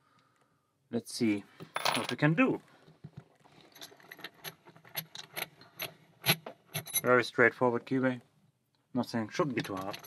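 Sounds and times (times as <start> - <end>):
padlock clinking: 3.8 - 7.1, 9.6 - 10.0.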